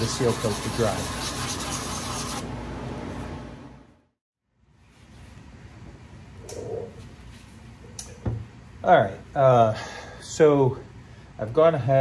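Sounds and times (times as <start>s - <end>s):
scratchy sanding by hand: 0.0s - 2.4s.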